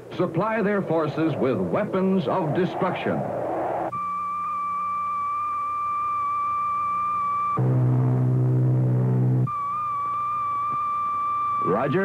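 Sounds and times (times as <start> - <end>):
high-pitched radio tone: 0.6 - 4.0, 11.6 - 12.0
low buzz: 0.7 - 11.6.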